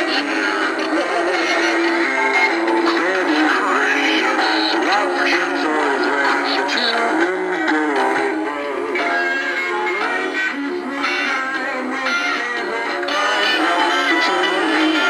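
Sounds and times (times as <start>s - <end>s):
christmas song from toy speaker: 0.0s - 15.0s
voice singing over music: 0.0s - 15.0s.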